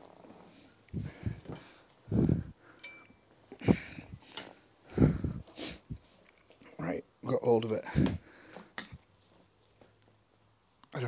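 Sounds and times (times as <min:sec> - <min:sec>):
man grunting and breathing heavily: 0:01.0 - 0:02.6, 0:03.6 - 0:04.2, 0:04.9 - 0:06.0.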